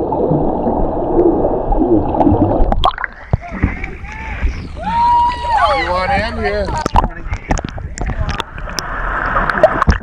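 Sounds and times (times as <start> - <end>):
muffled underwater water rushing: 0.0 - 10.0
water splashing: 0.0 - 10.0.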